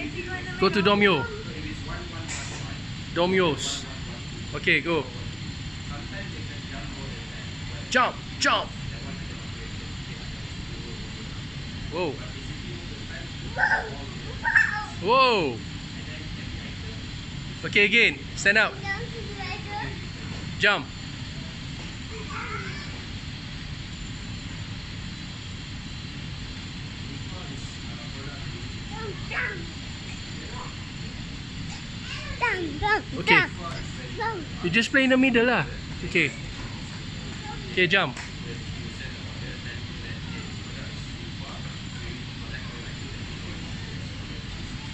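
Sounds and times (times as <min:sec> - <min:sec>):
faint distant voices: 0:00.0 - 0:23.2, 0:23.9 - 0:44.9
shop ambience hiss: 0:00.0 - 0:44.9
small child squealing: 0:13.6 - 0:15.0.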